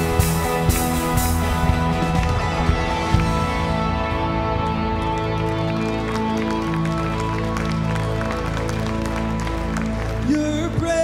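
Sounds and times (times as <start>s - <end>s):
electric guitar: 0.0s - 11.0s
keyboard chords: 0.0s - 11.0s.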